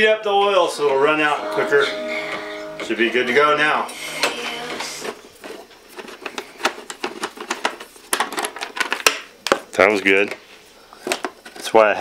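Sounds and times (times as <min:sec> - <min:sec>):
plastic panels clicking and tapping: 0:06.0 - 0:09.6.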